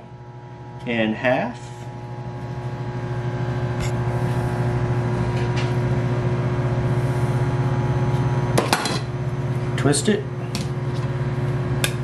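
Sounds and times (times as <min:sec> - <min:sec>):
microwave oven humming: 0:00.0 - 0:12.0.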